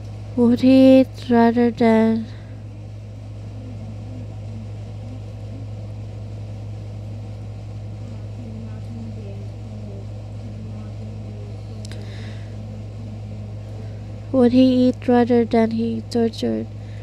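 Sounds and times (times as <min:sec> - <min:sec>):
steady low hum: 0:00.0 - 0:17.0
faint broken voices: 0:01.7 - 0:06.8, 0:07.7 - 0:15.7.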